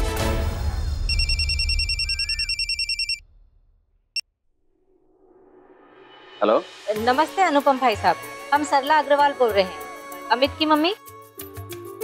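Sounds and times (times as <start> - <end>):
background music: 0.0 - 1.2, 6.4 - 12.0
phone ringing electronic trill: 1.1 - 3.2.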